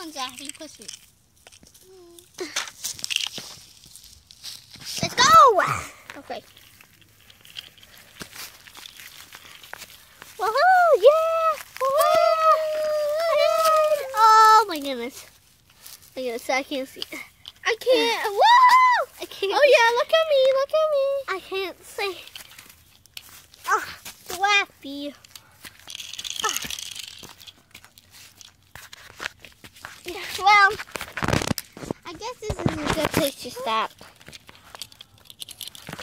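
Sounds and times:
gritty crackling and scraping: 0.0 - 36.0
dry leaves rustling and crackling: 2.8 - 5.0, 6.2 - 16.8.

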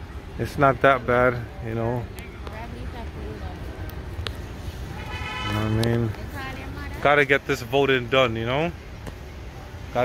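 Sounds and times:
low street noise rumble: 0.0 - 10.0.

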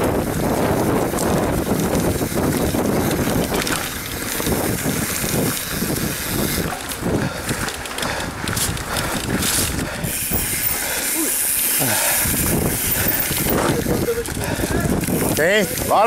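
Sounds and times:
bike bumps and jolts: 0.0 - 16.0
bike tyres rumbling on dirt: 0.0 - 16.0
wind buffeting microphone: 0.0 - 16.0.

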